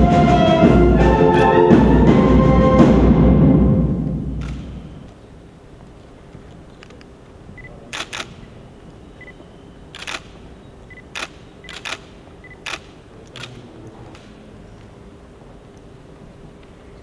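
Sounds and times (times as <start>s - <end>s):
camera shutters clicking: 4.4s - 4.8s, 7.9s - 8.5s, 9.9s - 14.4s
faint high-pitched beeps: 8.9s - 12.7s.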